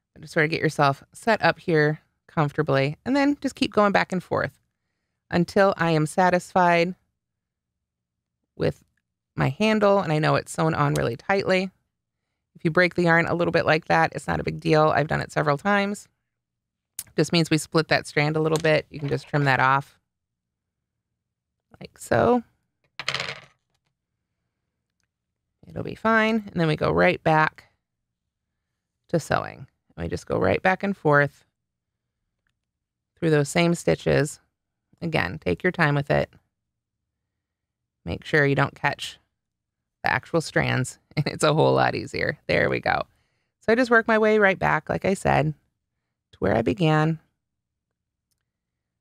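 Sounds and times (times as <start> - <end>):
woman speaking: 0.2 - 4.5, 5.3 - 7.0, 9.4 - 11.7, 12.6 - 16.0, 17.0 - 19.9, 21.8 - 22.4, 25.6 - 27.6, 29.1 - 31.4, 33.2 - 34.4, 35.0 - 36.3, 38.1 - 39.2, 40.0 - 43.0, 43.7 - 45.6, 46.4 - 47.2.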